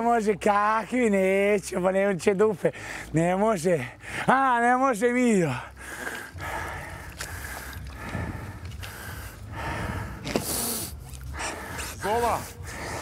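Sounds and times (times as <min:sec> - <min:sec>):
steady low rumble: 0:05.0 - 0:13.0
person breathing hard and gasping: 0:05.6 - 0:13.0.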